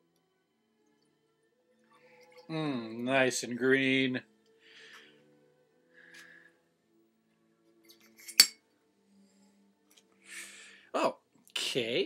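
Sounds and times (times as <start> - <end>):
glass clinking: 7.9 - 8.6.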